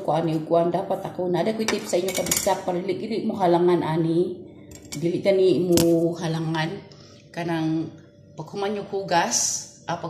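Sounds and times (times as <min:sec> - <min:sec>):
woman's voice: 0:00.0 - 0:10.0.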